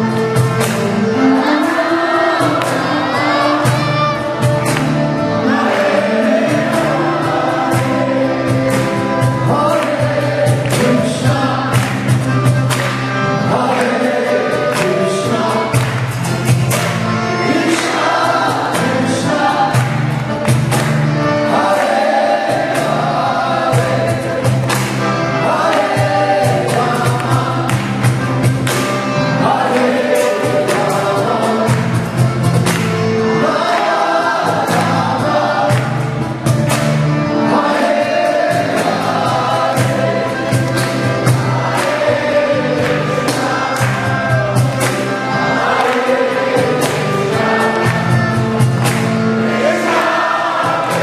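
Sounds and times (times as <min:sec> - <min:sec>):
sharp percussion strikes: 0:00.0 - 0:51.0
group chanting: 0:01.2 - 0:12.0, 0:13.4 - 0:15.9, 0:17.5 - 0:20.1, 0:21.3 - 0:28.2, 0:29.2 - 0:32.0, 0:33.3 - 0:36.2, 0:37.4 - 0:51.0
group of voices chanting: 0:49.4 - 0:51.0.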